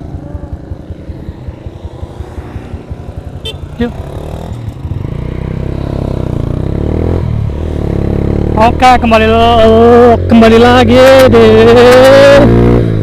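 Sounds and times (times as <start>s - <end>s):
motorcycle engine accelerating: 0.0s - 13.0s.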